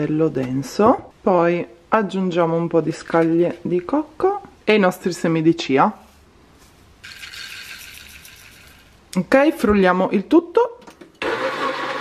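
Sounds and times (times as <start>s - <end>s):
seeds pouring into blender jar: 7.0s - 9.0s.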